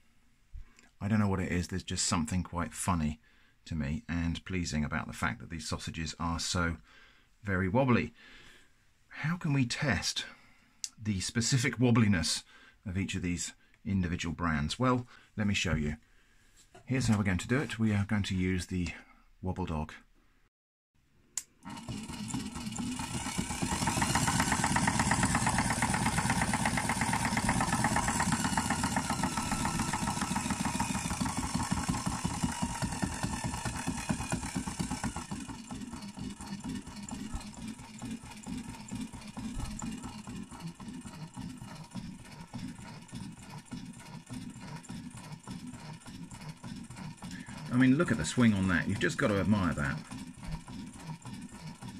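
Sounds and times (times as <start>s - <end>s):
machine motor running: 21.6s - 51.9s.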